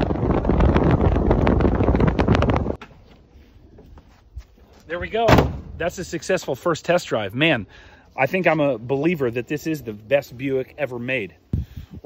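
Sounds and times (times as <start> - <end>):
wind buffeting microphone: 0.0 - 2.8.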